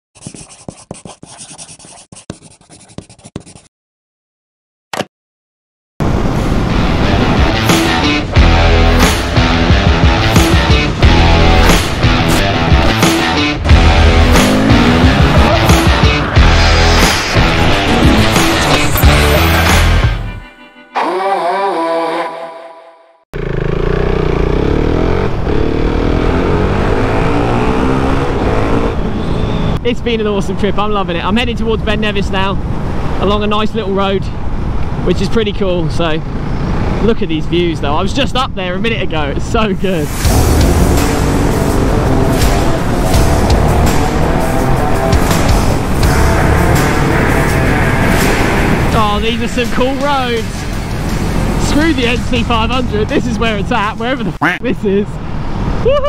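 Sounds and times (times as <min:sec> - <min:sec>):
pen scratching on paper: 0:00.2 - 0:03.7
upbeat intro music: 0:06.8 - 0:21.0, 0:40.1 - 0:52.4
motorcycle engine in tunnel: 0:23.4 - 0:29.8, 0:40.4 - 0:49.0.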